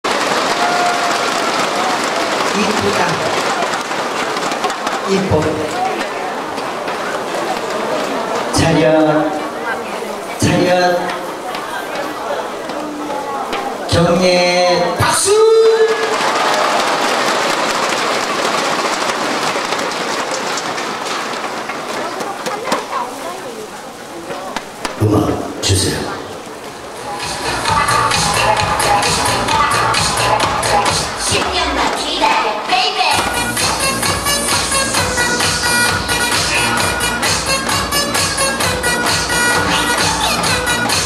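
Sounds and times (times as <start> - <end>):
audience applauding: 0.0 - 10.4, 15.0 - 25.2, 25.8 - 41.0.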